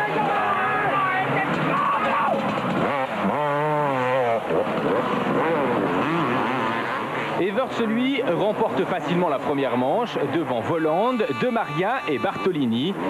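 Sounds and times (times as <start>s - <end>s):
motocross bikes revving: 0.0s - 13.0s
motorbike passing close: 0.0s - 13.0s.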